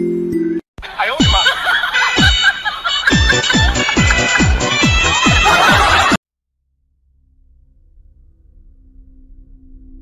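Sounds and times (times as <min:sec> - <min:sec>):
electronic dance music: 0:00.8 - 0:06.2.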